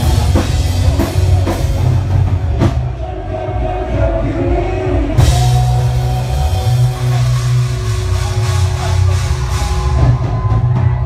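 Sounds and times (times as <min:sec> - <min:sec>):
deep bass drone: 0:00.0 - 0:11.0
loud rock music: 0:00.0 - 0:11.0.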